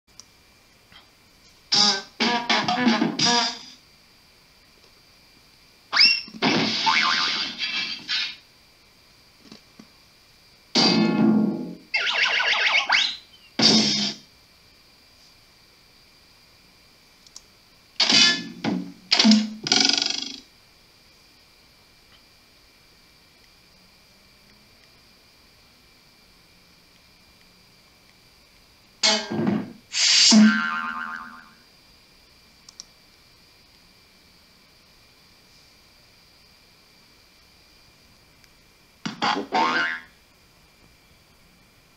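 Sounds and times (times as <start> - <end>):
cartoon crash: 1.7 - 3.7, 5.9 - 8.4, 10.7 - 14.2, 18.0 - 20.4, 29.0 - 31.6
cartoon boing: 6.8 - 7.4, 30.3 - 31.6, 39.2 - 40.1
faint clicks: 17.2 - 17.5, 32.6 - 33.0.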